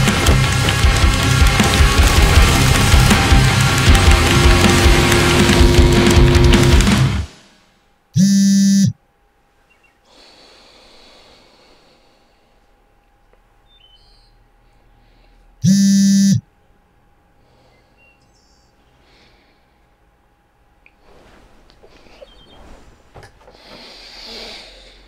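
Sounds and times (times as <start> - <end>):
electronic alarm buzzes: 8.2 - 9.0, 15.6 - 16.5
faint breath: 10.0 - 12.8, 14.6 - 15.6, 17.3 - 18.2, 18.8 - 20.0, 23.4 - 25.0.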